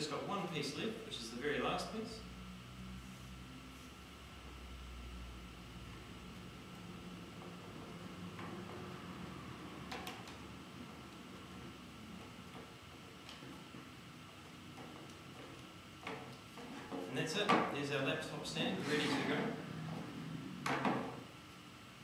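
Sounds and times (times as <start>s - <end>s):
low room hum: 0.0s - 22.0s.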